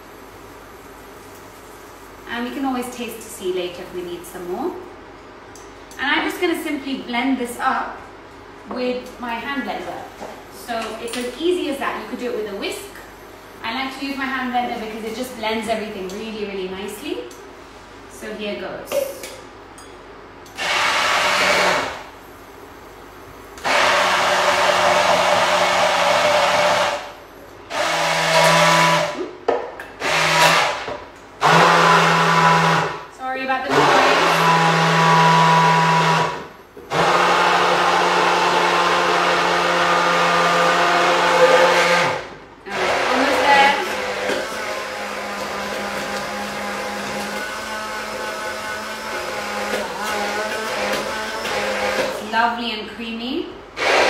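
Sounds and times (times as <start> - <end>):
hand blender whirring: 20.5 - 22.1, 23.6 - 27.1, 27.7 - 29.3, 30.0 - 33.0, 33.7 - 52.3, 53.8 - 54.0.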